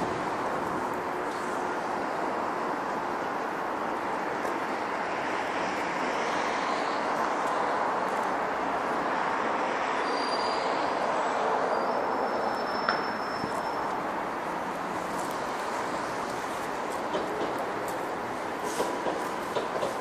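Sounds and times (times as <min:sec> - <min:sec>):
passing city transport: 0:00.0 - 0:20.0.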